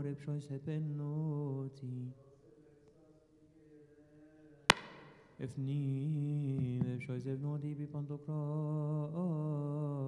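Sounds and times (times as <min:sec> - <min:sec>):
man chanting a prayer: 0:00.0 - 0:04.7
sharp knock with short ring: 0:04.7 - 0:05.4.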